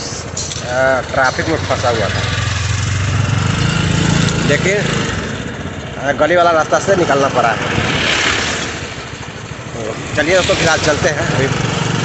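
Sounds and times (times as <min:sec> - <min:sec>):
motorcycle engine idling: 0:00.0 - 0:07.1
loud rush of noise: 0:00.0 - 0:12.0.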